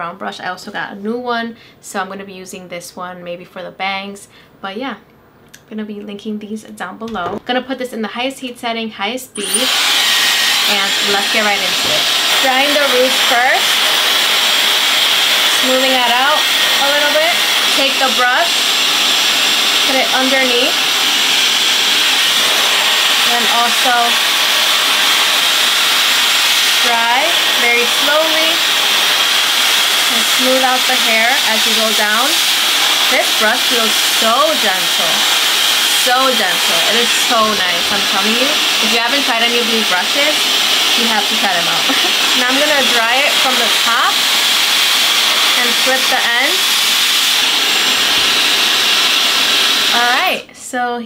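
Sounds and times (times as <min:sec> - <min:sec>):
hair dryer running: 0:09.4 - 0:50.5.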